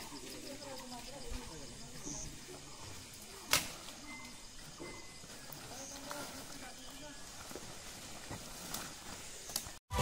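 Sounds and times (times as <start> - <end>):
sharp crack: 3.4 - 3.9.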